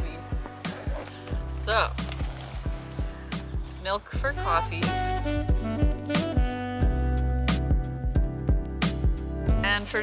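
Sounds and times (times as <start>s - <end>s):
background music with beat: 0.0s - 10.0s
held bass line: 0.0s - 10.0s.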